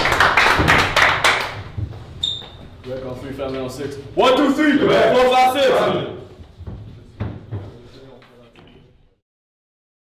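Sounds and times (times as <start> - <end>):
room noise: 0.0 - 9.2.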